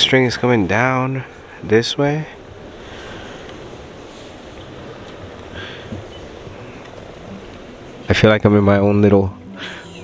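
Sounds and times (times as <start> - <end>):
wind buffeting microphone: 0.0 - 8.4.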